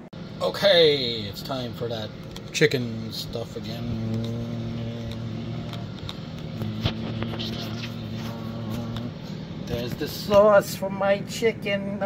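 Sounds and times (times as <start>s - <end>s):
air fryer fan humming: 0.0s - 12.0s.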